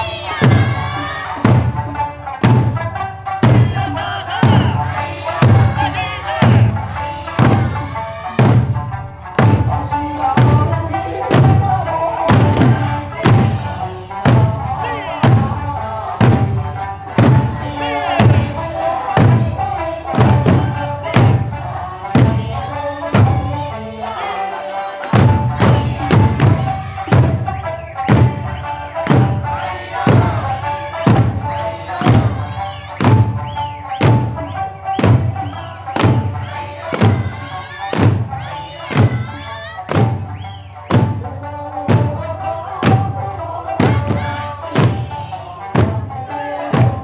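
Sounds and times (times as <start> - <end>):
large drums struck in unison: 0.0 - 23.8, 25.0 - 47.0
folk music: 0.0 - 47.0.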